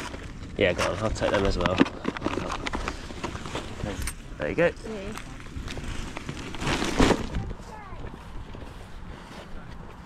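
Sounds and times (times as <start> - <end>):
plastic bag rustling: 0.0 - 8.5.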